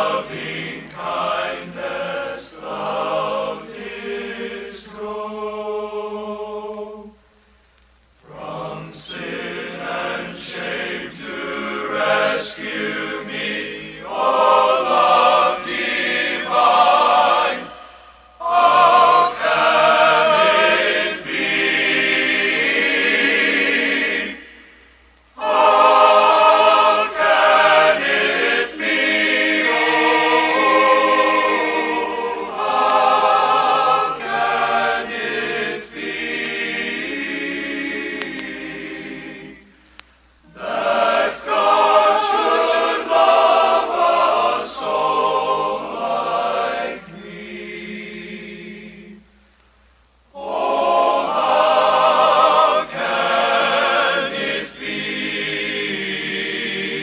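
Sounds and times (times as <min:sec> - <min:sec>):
men's choir singing in harmony: 0:00.0 - 0:07.2, 0:08.2 - 0:24.6, 0:25.4 - 0:39.7, 0:40.5 - 0:49.3, 0:50.3 - 0:57.0.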